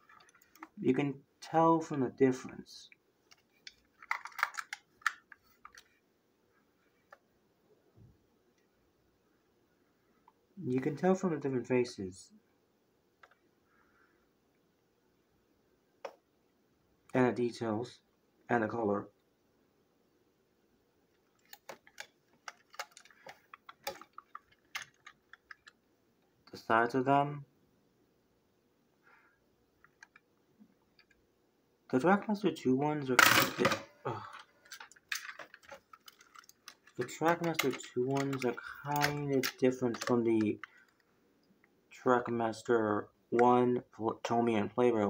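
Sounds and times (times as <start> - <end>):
plastic toy trains clicking: 3.7 - 5.9, 21.4 - 25.8, 33.2 - 41.0.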